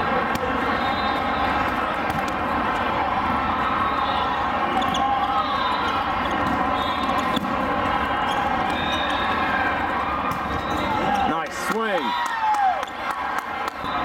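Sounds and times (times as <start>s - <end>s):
many overlapping voices: 0.0s - 14.0s
players shouting: 0.0s - 14.0s
volleyballs being hit: 1.6s - 2.8s, 6.2s - 9.0s, 10.1s - 11.2s.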